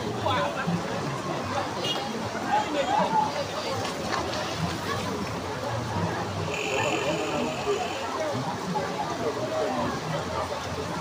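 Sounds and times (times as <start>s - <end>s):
floodwater rushing: 0.0s - 11.0s
people talking indistinctly: 0.0s - 11.0s.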